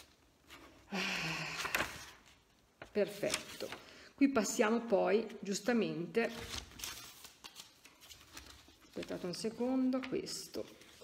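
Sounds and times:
paper handling clicks and rustles: 1.6 - 3.9, 6.3 - 11.0.

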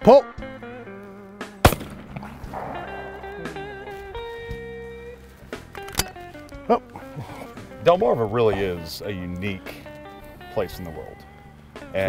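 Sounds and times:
shotgun shot with echo: 1.6 - 3.9.

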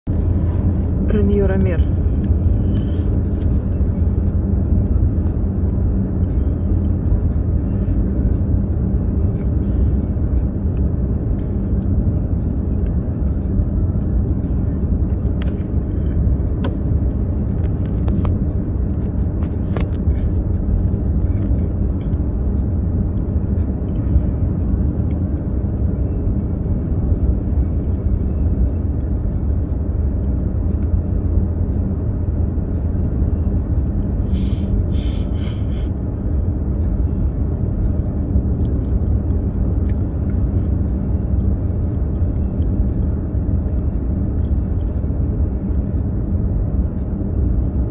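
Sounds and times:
car driving rumble: 0.0 - 47.9.

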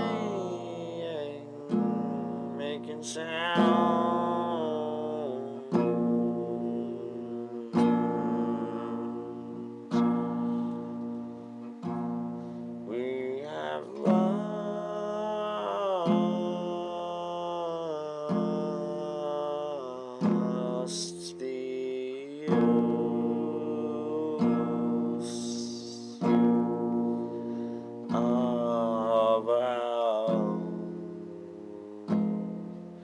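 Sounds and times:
acoustic guitar strummed: 0.0 - 33.0.

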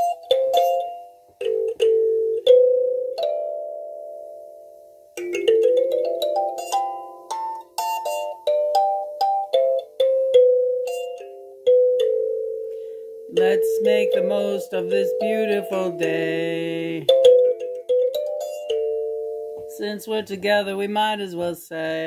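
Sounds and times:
kalimba melody: 0.0 - 19.7.

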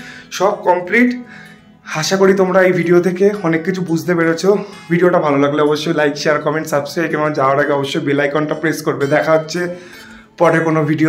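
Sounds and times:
background music with held note: 0.0 - 11.0
man speaking: 0.3 - 1.3, 1.9 - 9.8, 10.4 - 11.0.

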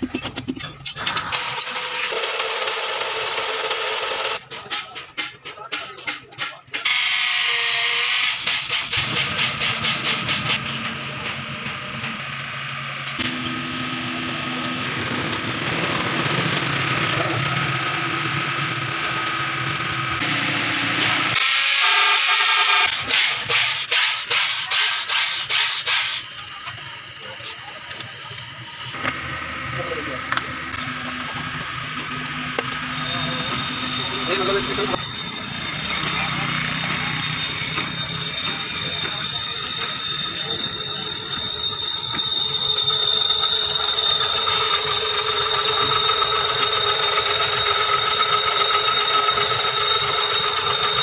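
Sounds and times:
broad mechanical noise: 0.0 - 51.0
boring machine cutting metal: 6.7 - 51.0
drill hone scraping metal: 6.9 - 10.6, 21.4 - 26.4, 30.3 - 51.0.

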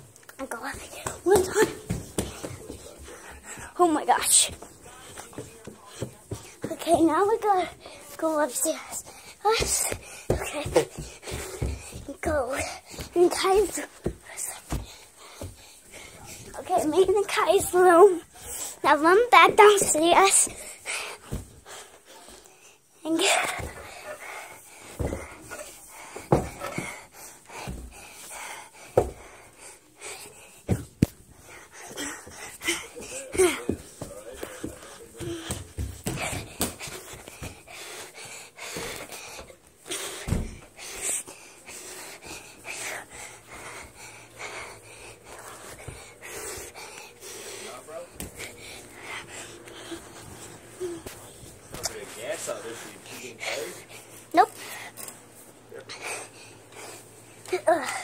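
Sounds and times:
person panting: 0.7 - 18.9, 20.1 - 51.5, 52.2 - 55.1, 55.7 - 58.0.

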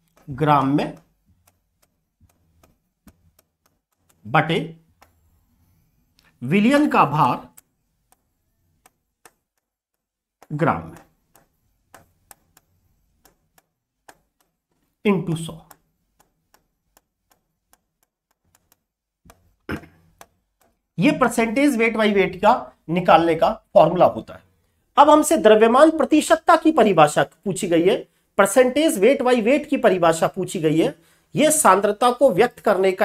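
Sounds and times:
marker tapping on whiteboard: 0.0 - 4.2, 7.6 - 20.8.

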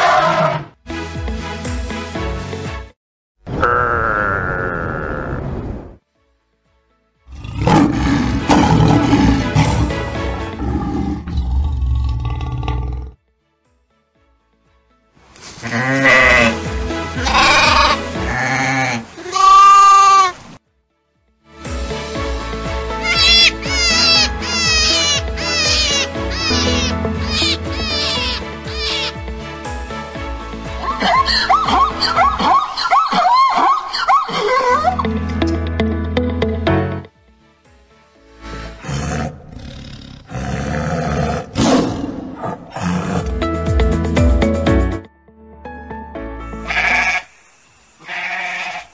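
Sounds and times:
music: 0.7 - 3.0, 6.0 - 19.0, 20.6 - 33.0, 33.6 - 39.8, 42.7 - 47.2
tiger roaring: 7.3 - 13.2, 38.7 - 43.4
sheep bleating: 15.6 - 16.6, 17.2 - 20.4, 23.0 - 29.2, 46.6 - 47.4, 48.0 - 48.9.

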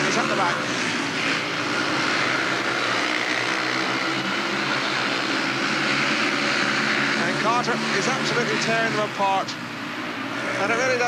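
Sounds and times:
motorcycle engines droning: 0.0 - 11.0.

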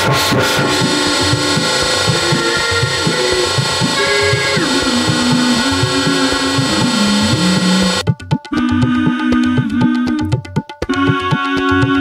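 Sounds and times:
sliding synthetic tones: 0.0 - 8.0
rapid low pulsing: 0.0 - 11.2.

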